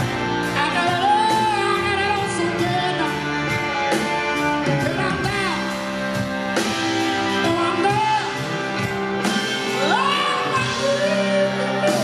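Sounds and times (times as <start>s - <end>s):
guitar: 0.0s - 12.0s
soul band playing: 0.0s - 12.0s.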